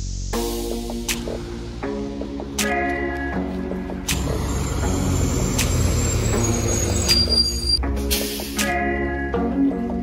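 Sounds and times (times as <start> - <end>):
bus engine rumbling: 3.6 - 8.5.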